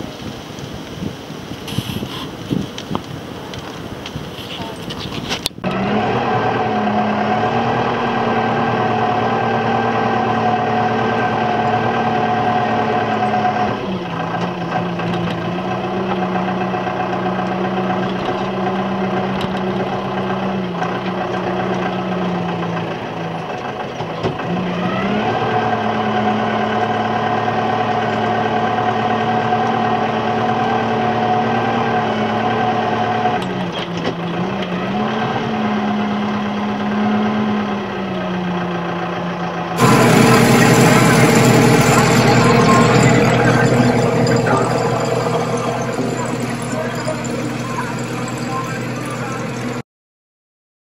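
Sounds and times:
tractor engine running: 1.7 - 49.8.

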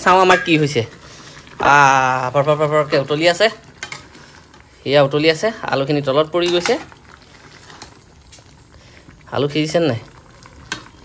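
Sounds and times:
curry bubbling: 0.0 - 11.0.

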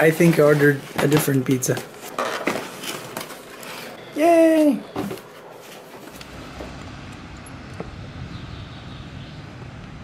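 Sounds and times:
cardboard boxes rustling: 0.0 - 4.0, 4.9 - 6.3.

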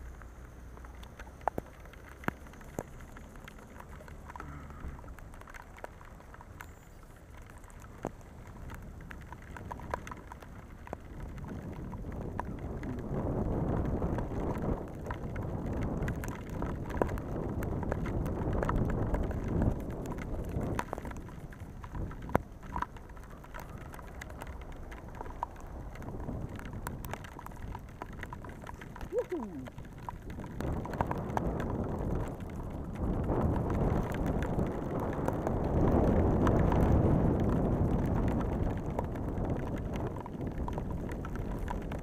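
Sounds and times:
rain and tyre spray hiss: 0.0 - 42.0
raindrop ticks: 0.0 - 42.0
low rumble: 7.4 - 42.0.

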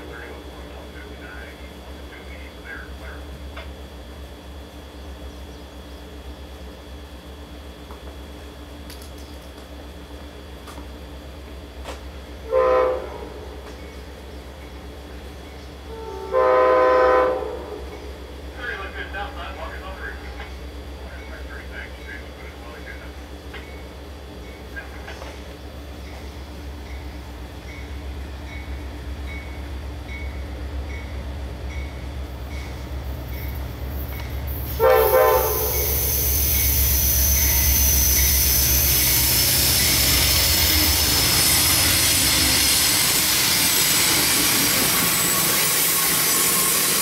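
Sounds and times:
train horn blasts: 12.4 - 13.6, 15.9 - 17.9, 34.7 - 36.2.

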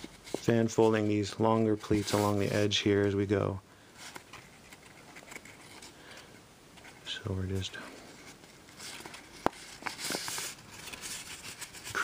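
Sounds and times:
paper crinkling and folding: 0.0 - 3.1, 4.0 - 12.0.

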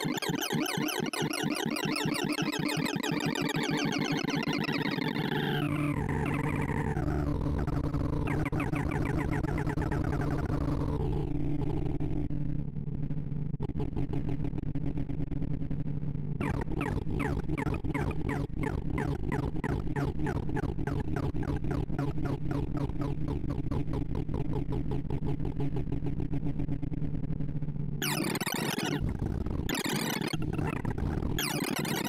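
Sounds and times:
rapid low-pitched synthesized beeps: 8.2 - 10.6, 16.4 - 23.2, 28.0 - 32.0.

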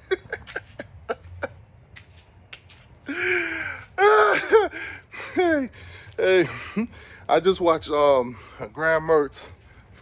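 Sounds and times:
man laughing loudly: 0.0 - 1.8, 3.1 - 6.9.

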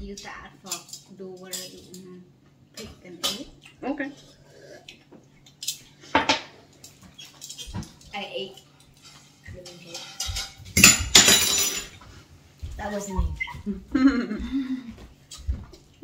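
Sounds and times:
tongs clinking on plates: 0.6 - 2.2, 5.5 - 12.0.

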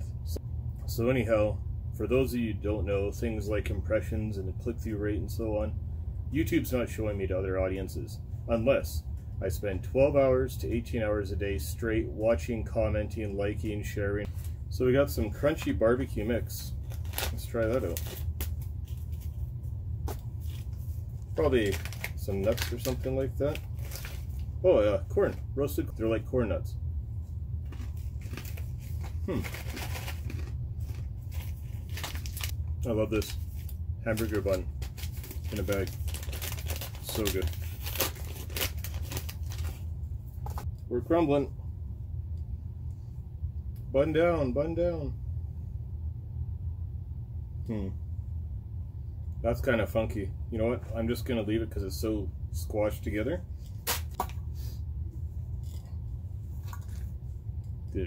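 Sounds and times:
steady low hum: 0.0 - 58.0
steady low rumble: 0.0 - 58.0
packet crinkling: 15.5 - 24.6, 27.6 - 40.6, 56.5 - 57.1
crunchy snack being chewed: 27.6 - 32.4, 55.6 - 56.0.

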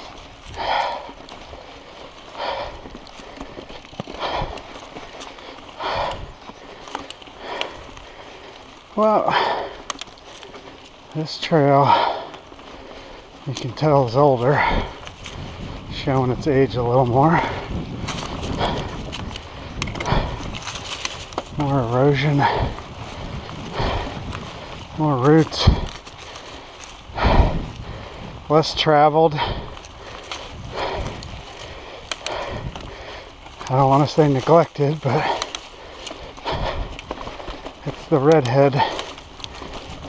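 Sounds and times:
steady low rumble: 0.0 - 28.7
bike clicking and rattling: 0.0 - 40.0
bike tyres crunching dry leaves: 0.0 - 40.0.

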